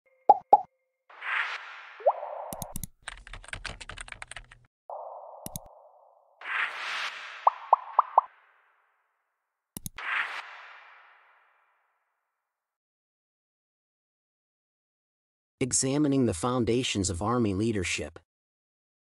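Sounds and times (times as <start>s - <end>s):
rising blip: 0.3s - 2.8s, 4.9s - 8.6s
keyboard typing clicks: 2.5s - 4.6s, 5.4s - 5.7s, 9.8s - 10.0s.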